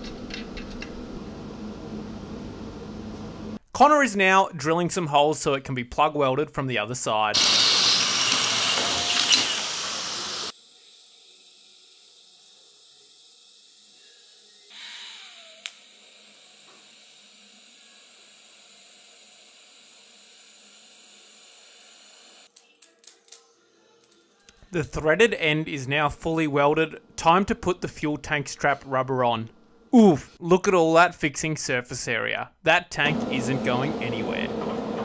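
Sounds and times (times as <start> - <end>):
welding arc hissing: 7.4 - 14.4
cordless drill boring through metal: 7.4 - 22.5.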